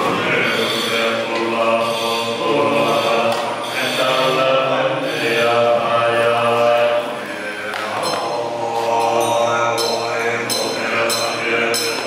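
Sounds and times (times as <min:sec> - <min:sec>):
monks chanting in unison: 0:00.0 - 0:12.0.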